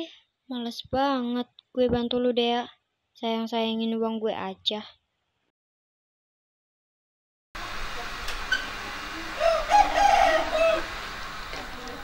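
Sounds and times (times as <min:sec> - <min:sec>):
rooster crowing: 0:09.3 - 0:11.1.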